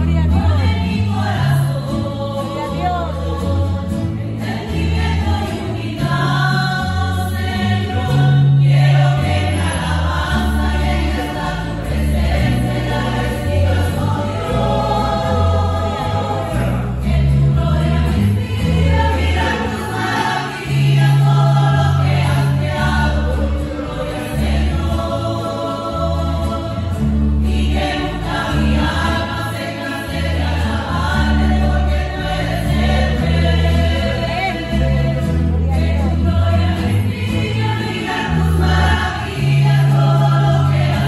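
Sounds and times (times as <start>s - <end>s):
acoustic guitars: 0.0s - 41.0s
plucked bass line: 0.0s - 41.0s
women's choir singing a hymn: 0.0s - 41.0s.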